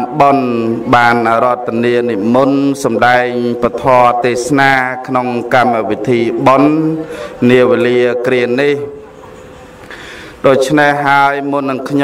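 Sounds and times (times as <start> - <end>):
man speaking slowly: 0.0 - 9.0.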